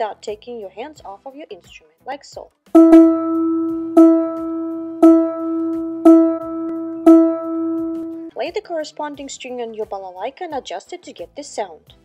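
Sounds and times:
plucked balalaika string note: 2.8s - 8.3s.

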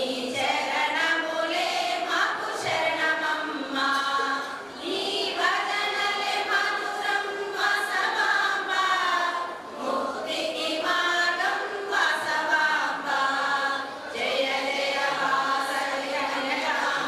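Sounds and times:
women's chorus singing: 0.0s - 17.0s.

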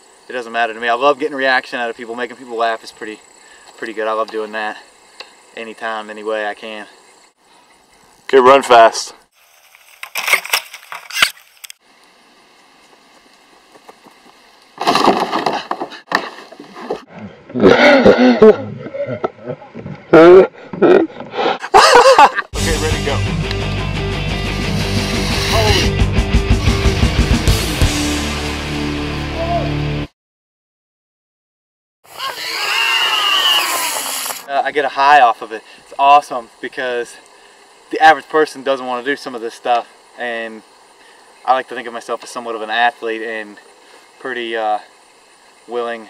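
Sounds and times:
footsteps on grass: 9.4s - 11.8s
body landing on plastic sled: 14.8s - 17.0s
rushing hiss: 24.5s - 26.0s, 32.1s - 42.4s
zip line trolley whirring: 32.1s - 34.4s.

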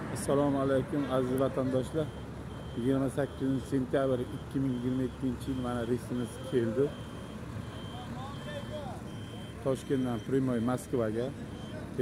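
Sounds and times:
bus engine rumble: 0.0s - 12.0s
high electronic beeps: 1.7s - 12.0s.

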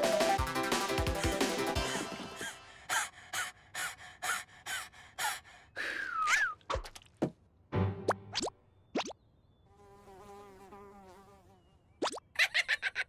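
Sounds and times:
cartoon cockroaches panting: 1.0s - 5.9s.

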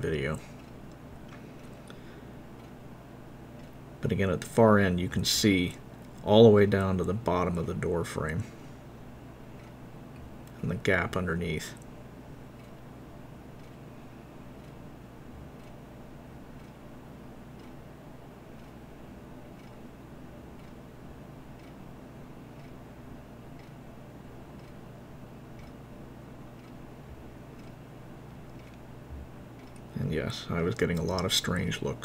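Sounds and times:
steady low hum: 0.0s - 32.0s
faint ticks: 15.4s - 15.8s, 16.6s - 16.8s, 17.6s - 17.8s, 18.5s - 18.8s, 19.6s - 19.9s, 20.5s - 20.8s, 21.6s - 21.8s, 22.6s - 22.8s, 23.5s - 23.8s, 24.6s - 24.8s, 25.6s - 25.8s, 26.6s - 27.8s, 28.5s - 29.9s.

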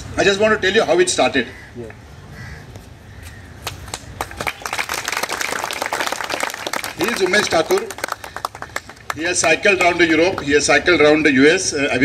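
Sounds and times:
crowd applauding: 3.6s - 10.4s.

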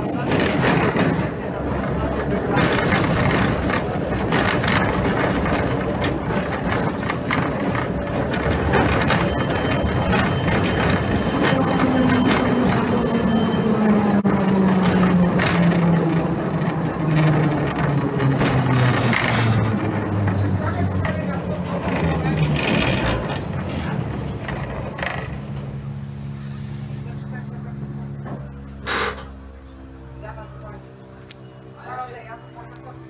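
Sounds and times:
tram wheels rumbling over rails: 0.0s - 33.0s
thin high ringing tones: 9.1s - 14.1s
low motor whine: 23.3s - 33.0s.

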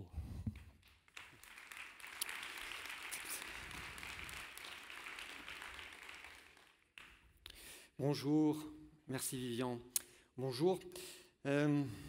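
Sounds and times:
audience applause: 0.9s - 7.2s.

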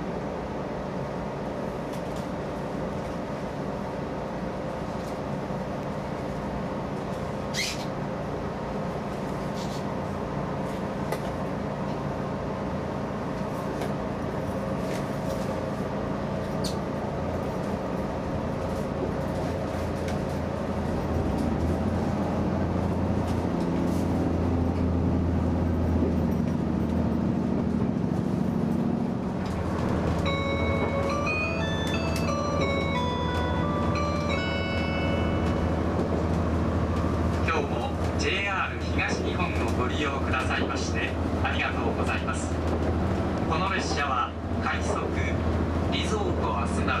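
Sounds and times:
train drive hum: 0.0s - 47.0s
multi-note chime: 30.2s - 35.8s
voice over train speakers: 37.4s - 42.7s, 43.4s - 47.0s.

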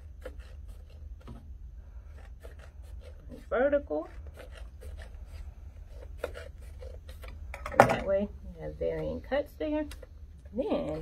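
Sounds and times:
scissors cutting paper: 0.0s - 1.4s, 2.1s - 7.4s
steady low hum: 0.0s - 11.0s.

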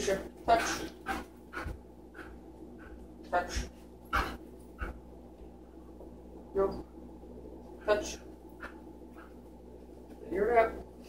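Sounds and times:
dog panting: 0.4s - 5.0s, 7.8s - 9.5s.

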